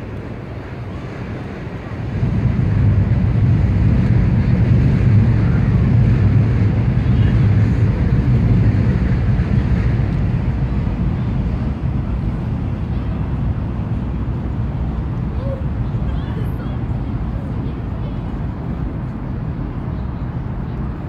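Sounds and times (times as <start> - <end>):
loud low rumble: 0.0 - 21.0
faint voices of people: 15.2 - 21.0.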